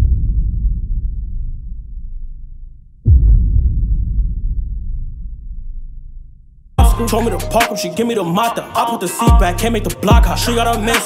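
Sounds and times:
deep bass throbbing: 0.0 - 7.6, 9.3 - 11.0
heavy bass hit: 0.0 - 7.6.

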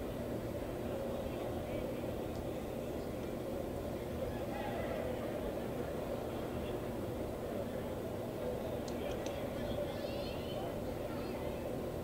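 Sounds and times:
distant voices calling out: 0.0 - 12.0
light clicks: 8.8 - 9.4.

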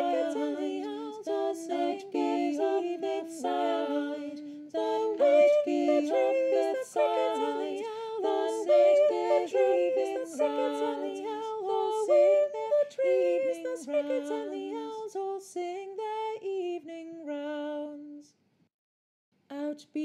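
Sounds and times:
a cappella voices singing: 0.0 - 18.4.

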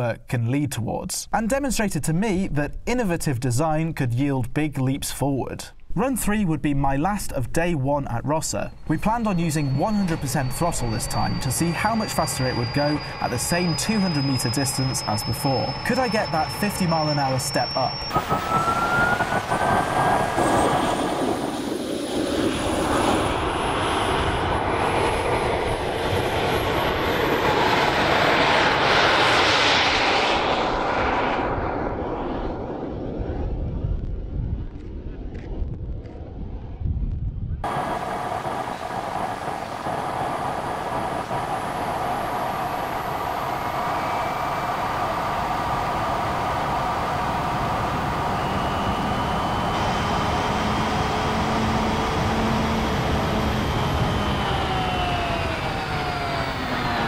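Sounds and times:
jet turbine whine: 8.2 - 36.9, 37.5 - 57.0
rush of air: 17.9 - 26.4, 37.6 - 57.0.

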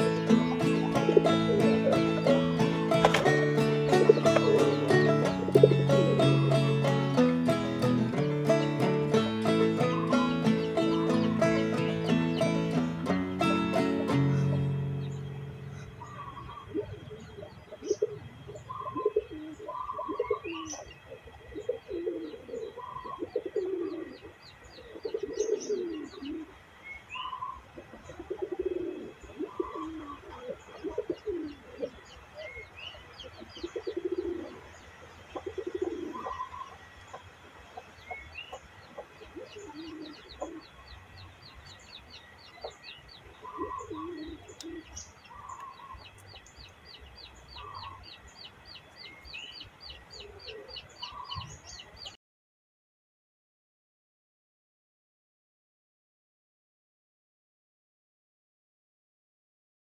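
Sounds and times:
pigeons cooing: 0.0 - 8.2, 8.8 - 26.5, 27.2 - 32.7, 33.3 - 34.7, 35.3 - 37.2, 38.1 - 40.9, 42.6 - 46.4, 47.5 - 48.1, 50.1 - 51.8.

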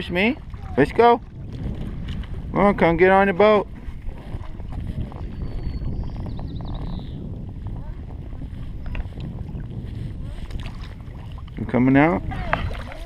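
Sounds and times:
water lapping around kayak: 0.0 - 13.0
wind rumble on microphone: 0.0 - 13.0.

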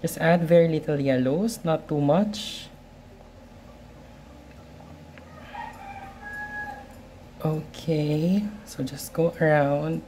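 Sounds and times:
faint rooster crow: 5.2 - 7.0.

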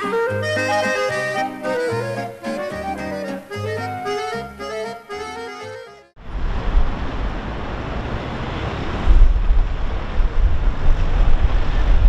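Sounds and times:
low rumble: 6.2 - 12.0
rushing noise: 6.2 - 12.0.

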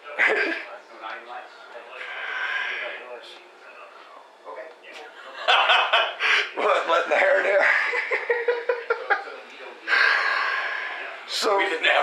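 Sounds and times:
men laughing: 5.2 - 10.2.

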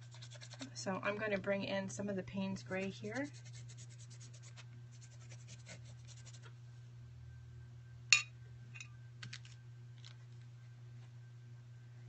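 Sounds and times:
paintbrush scratching on paper: 0.0 - 0.7, 3.1 - 6.5
low hum: 4.7 - 12.0.

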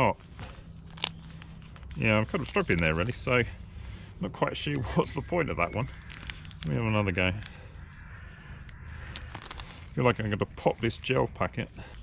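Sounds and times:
plastic sachet crinkling: 0.0 - 12.0
steady low rumble: 0.0 - 12.0.

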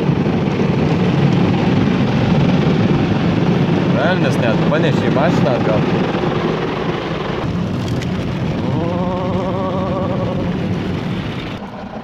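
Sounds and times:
water jets drumming on car: 0.0 - 12.0
wavering hum: 5.8 - 12.0.

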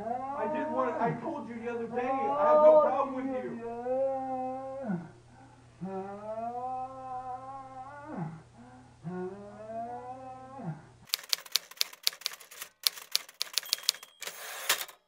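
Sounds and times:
man moaning: 3.7 - 10.9
typewriter-like clicks: 11.1 - 15.0.

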